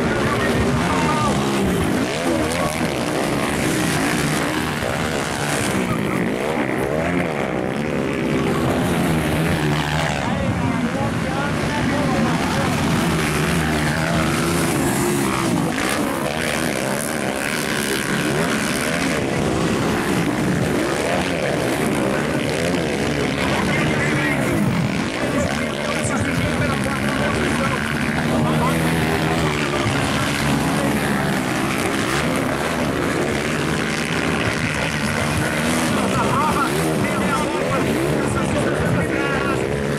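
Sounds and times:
dirt bike engines revving: 0:00.0 - 0:39.9.

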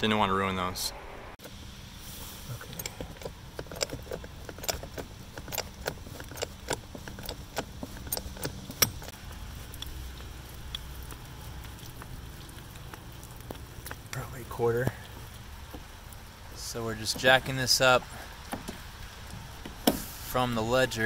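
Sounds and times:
jack metallic clicks and creaks: 0:02.6 - 0:21.0.

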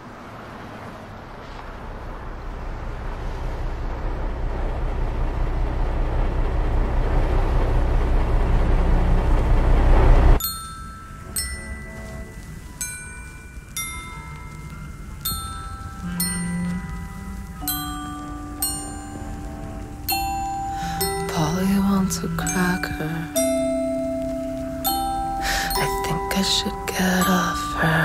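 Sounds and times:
vehicle engine and road rumble: 0:00.0 - 0:28.0
glockenspiel notes: 0:10.4 - 0:28.0.

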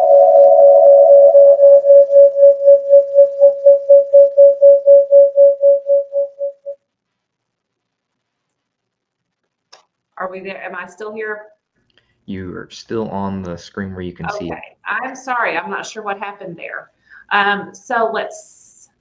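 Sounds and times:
audio feedback howl: 0:00.0 - 0:06.8.

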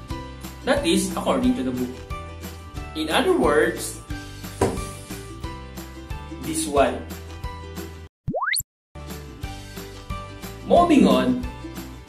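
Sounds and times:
background music: 0:00.0 - 0:08.1, 0:09.0 - 0:12.0
upward pitch glide pop-up effect: 0:08.3 - 0:08.6.

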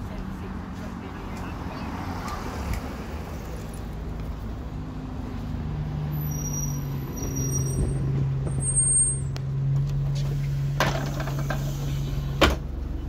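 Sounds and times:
bus engine humming: 0:00.0 - 0:13.0
high-pitched brake squeals: 0:06.1 - 0:09.4.

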